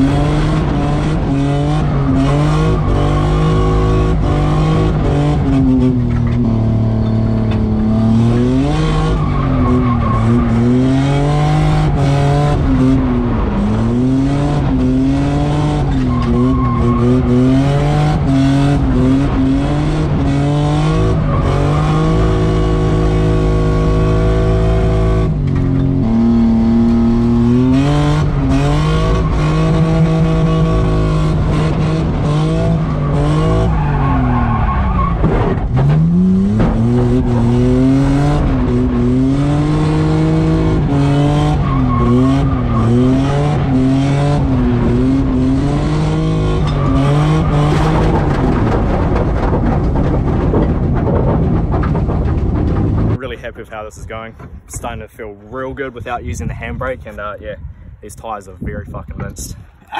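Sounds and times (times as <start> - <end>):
car engine revving high: 0.0 - 50.4
tyres skidding: 0.0 - 57.4.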